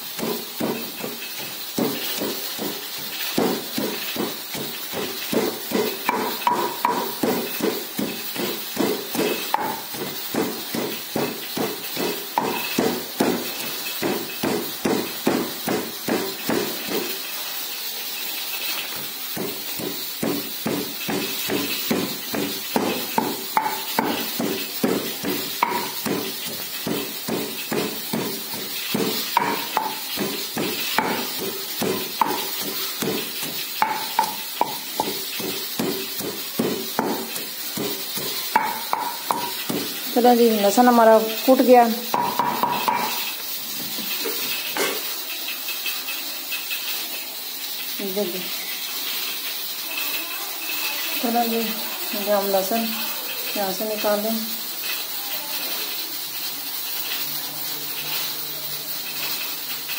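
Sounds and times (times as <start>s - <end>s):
pestle pounding in stone mortar: 0.0s - 17.3s, 18.6s - 44.2s.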